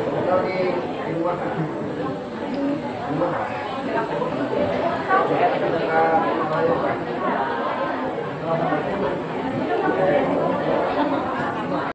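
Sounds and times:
indistinct chatter: 0.0s - 11.9s.

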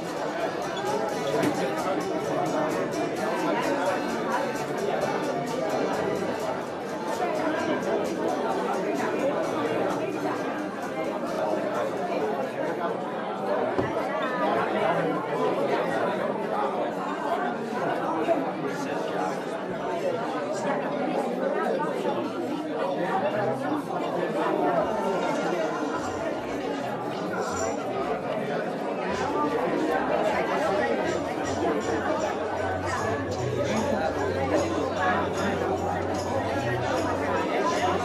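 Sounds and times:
crowd chatter: 0.0s - 38.0s.

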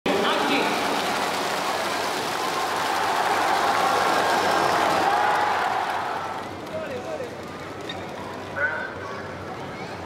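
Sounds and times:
stadium crowd noise: 0.1s - 10.0s.

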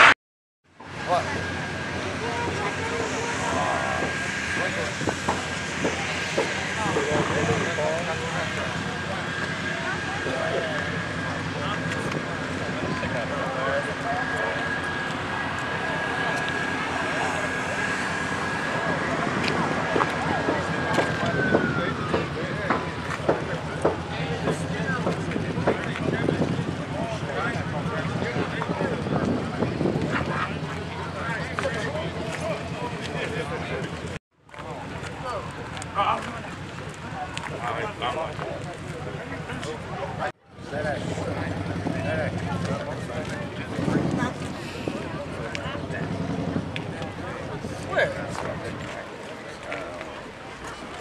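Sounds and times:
high-pitched whine: 0.8s - 34.2s
background voices chattering: 0.8s - 51.0s
car engine running: 0.9s - 34.2s.

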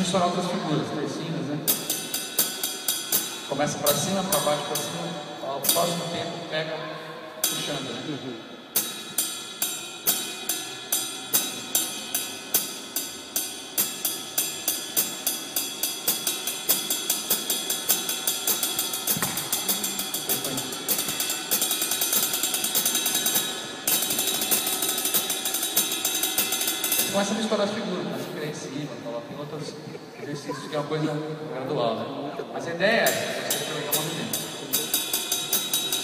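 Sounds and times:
drumstick strokes on cymbal: 1.6s - 6.5s, 7.2s - 28.3s, 33.0s - 36.0s.

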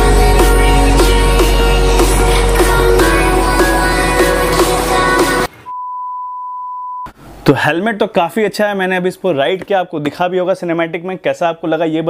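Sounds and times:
background music: 0.0s - 5.5s
steady electronic beep tone: 5.6s - 7.1s.

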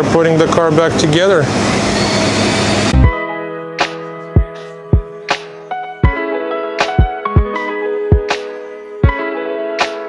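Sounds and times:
background music with deep bass: 2.9s - 10.0s.

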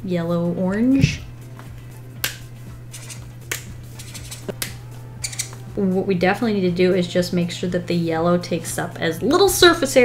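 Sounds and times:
marker caps clicking: 3.0s - 5.6s.

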